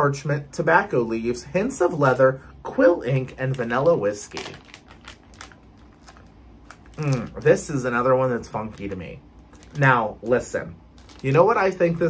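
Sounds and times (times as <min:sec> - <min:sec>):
low room hum: 0:00.0 - 0:12.0
plastic wrapper crinkling: 0:03.1 - 0:12.0.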